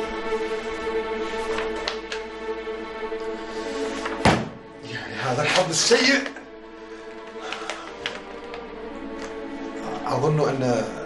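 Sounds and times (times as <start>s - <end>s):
dramatic string music: 0.0s - 11.0s
loud low thud: 4.2s - 4.7s.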